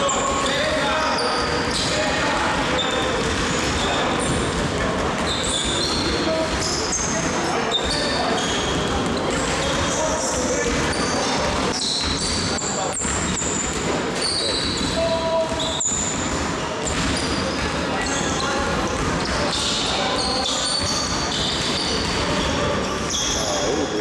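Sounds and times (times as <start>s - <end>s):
sneakers squeaking on court: 0.0s - 24.0s
basketballs bouncing on hardwood: 1.4s - 23.4s.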